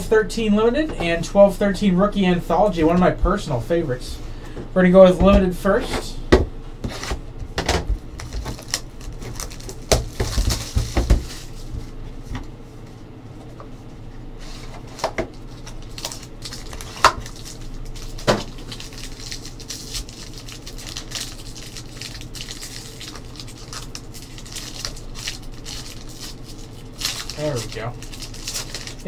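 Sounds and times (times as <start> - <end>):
foil pack crinkling: 8.0 - 11.8, 14.4 - 29.0.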